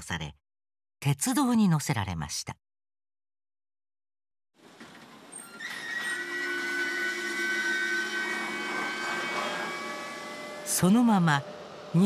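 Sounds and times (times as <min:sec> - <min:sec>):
train rushing on rails: 0:04.6 - 0:12.0
metallic squealing: 0:05.3 - 0:11.9.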